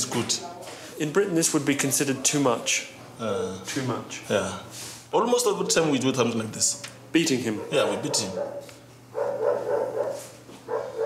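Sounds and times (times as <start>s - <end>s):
dog barking: 7.5s - 11.0s.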